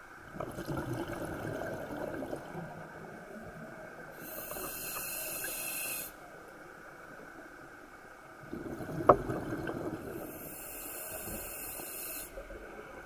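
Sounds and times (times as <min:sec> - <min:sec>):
regulator inhale hiss: 0:04.1 - 0:06.3, 0:10.2 - 0:12.6.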